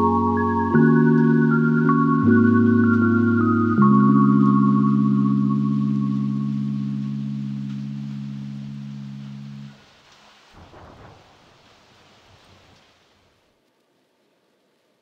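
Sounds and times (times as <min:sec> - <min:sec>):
background music held chord: 0:00.0 - 0:09.8
faint hiss: 0:02.8 - 0:15.0.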